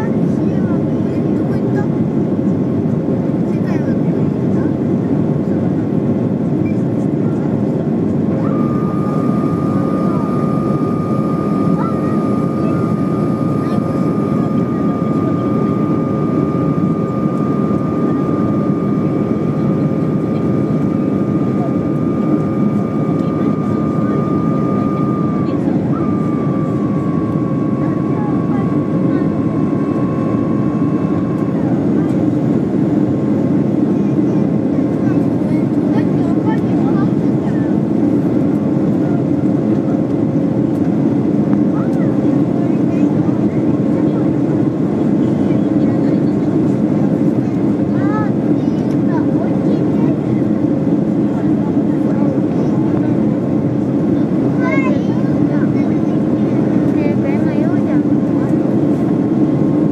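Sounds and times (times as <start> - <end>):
airliner cabin engine rush: 0.0 - 59.9
thin steady whine: 6.5 - 59.9.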